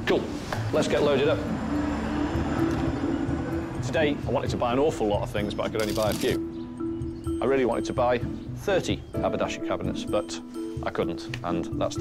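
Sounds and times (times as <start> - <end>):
traffic rumble: 0.0 - 6.8
engine hum: 0.5 - 4.5.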